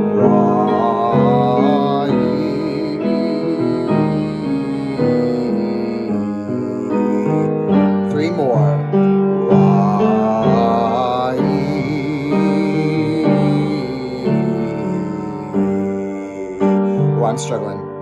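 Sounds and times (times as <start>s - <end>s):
keyboard chords: 0.0s - 18.0s
man singing vocal warm-up: 0.0s - 18.0s.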